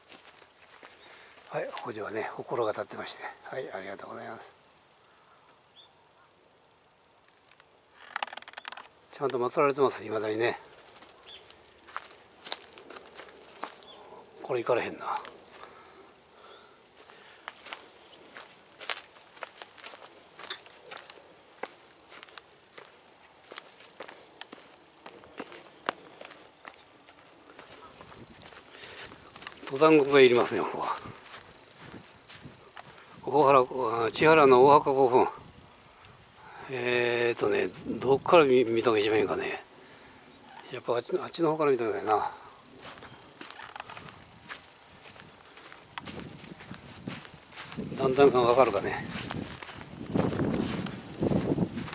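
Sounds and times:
footsteps crunching on dry leaves: 0.0 - 2.1, 10.6 - 33.8, 42.1 - 51.9.

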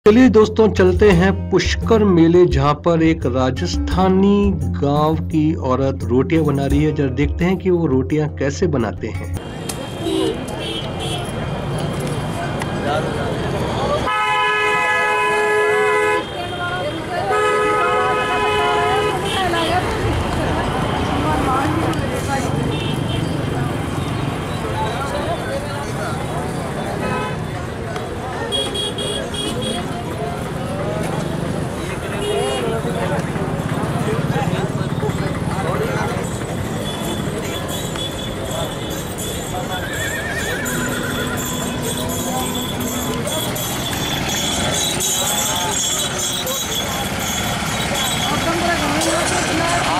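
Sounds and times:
people talking: 0.1 - 14.1, 16.2 - 17.6, 18.7 - 49.9
crowd babble: 9.2 - 49.9
vehicle horn blasts: 14.1 - 19.8, 28.5 - 29.9, 40.4 - 47.4
horse whinnying: 39.7 - 41.8.

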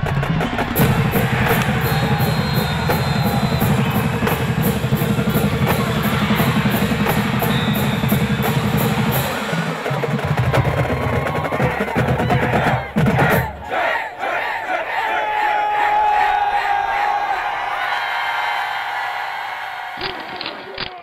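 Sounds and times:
theme music with heavy drums: 0.0 - 13.5
stadium crowd cheering: 0.0 - 21.0.

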